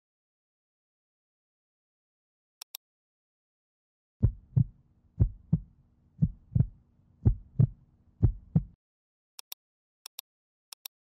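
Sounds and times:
heartbeat thumps: 4.2s - 8.8s.

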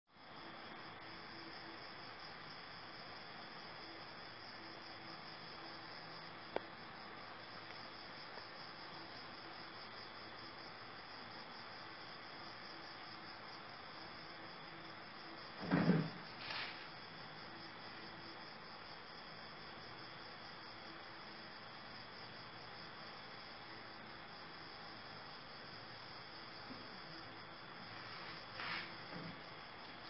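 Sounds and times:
night insects chirring: 0.2s - 30.0s
thump of movement: 15.6s - 16.9s, 28.6s - 29.4s.

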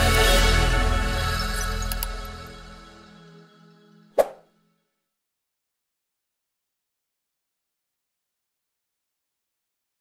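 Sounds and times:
background music: 0.0s - 5.0s
short pop sound effect: 4.2s - 4.4s.

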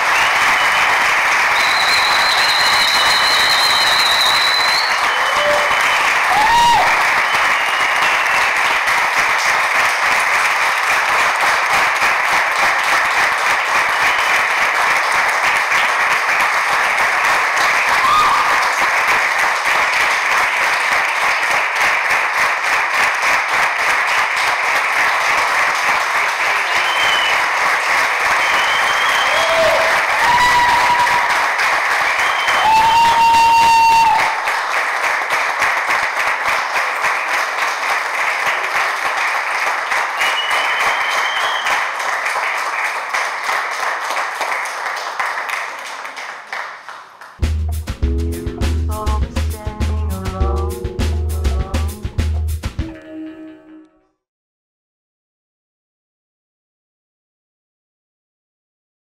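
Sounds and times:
audience applauding: 0.0s - 52.6s
high held notes: 47.4s - 54.0s.

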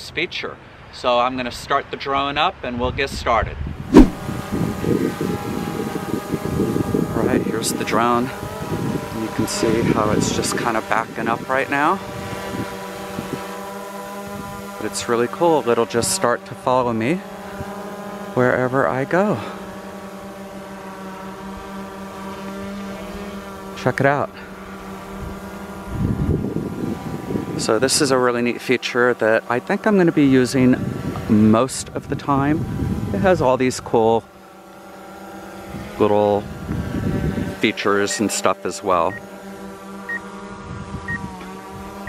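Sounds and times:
drone propellers buzzing: 3.8s - 31.5s, 34.2s - 42.0s.

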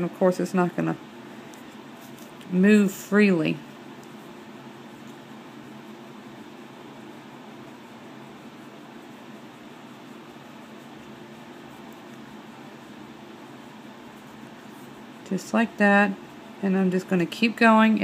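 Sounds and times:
mechanical hum with hiss: 0.0s - 18.0s.

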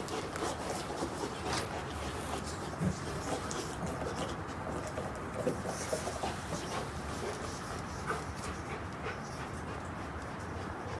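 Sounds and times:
dog breathing and mouth sounds: 0.0s - 10.9s.

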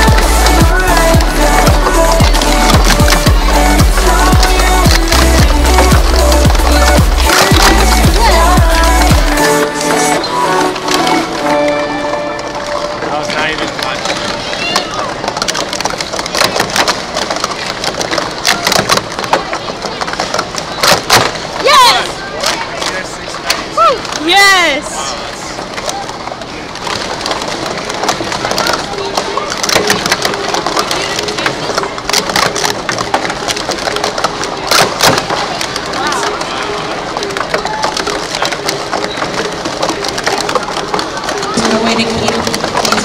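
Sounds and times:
plastic cups clicking and clacking: 0.0s - 43.0s.

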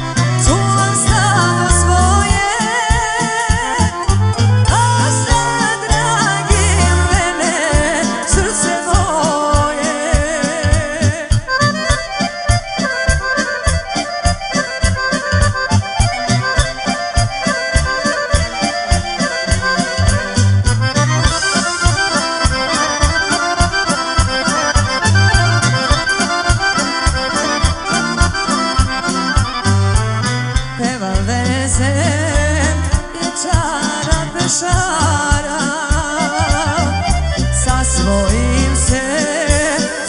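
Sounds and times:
accordion melodic runs: 0.0s - 40.0s
keyboard: 0.0s - 40.0s
steady drum beat: 0.0s - 40.0s.

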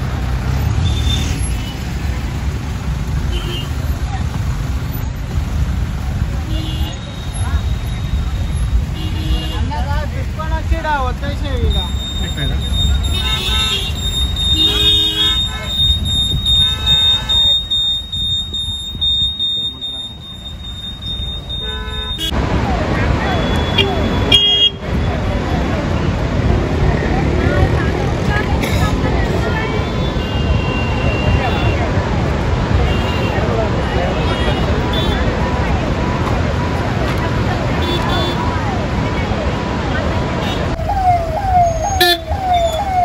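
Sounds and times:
voices: 1.5s - 43.0s
car horns tooting: 3.2s - 3.9s, 6.4s - 9.8s, 11.6s - 25.2s, 29.2s - 32.0s, 32.8s - 33.5s, 34.1s - 35.4s, 37.6s - 38.6s, 41.6s - 43.0s.

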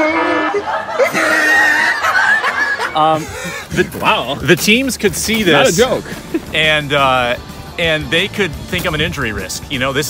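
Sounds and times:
laughter: 0.3s - 4.0s.

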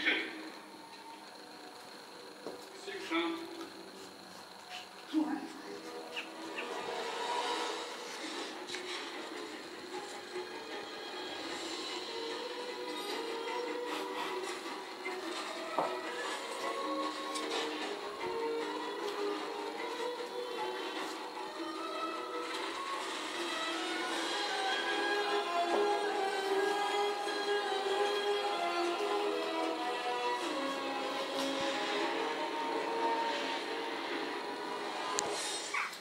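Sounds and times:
drama score music on television: 0.0s - 36.0s.

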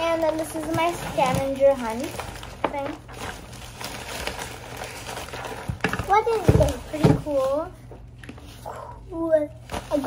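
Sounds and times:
nylon bags and paper rustling: 0.0s - 7.8s, 9.6s - 10.0s.

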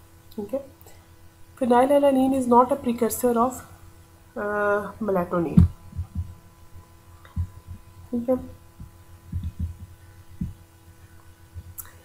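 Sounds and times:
steady electrical hum: 0.0s - 12.0s
soft low thumps: 5.4s - 10.8s, 11.5s - 11.8s.

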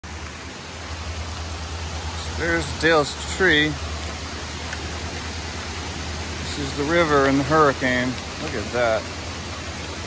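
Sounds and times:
fast-running creek rushing: 0.0s - 10.0s.

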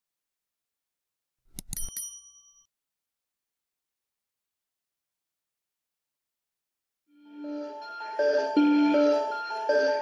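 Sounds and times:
quick click sound effects: 1.5s - 2.0s
bright bell ding: 1.6s - 2.7s.

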